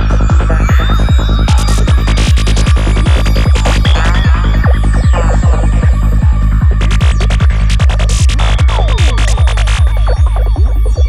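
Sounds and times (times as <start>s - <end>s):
four-on-the-floor kick drum: 0.0s - 10.8s
crisp high percussion pattern: 0.0s - 11.0s
rolling bassline: 0.0s - 11.0s.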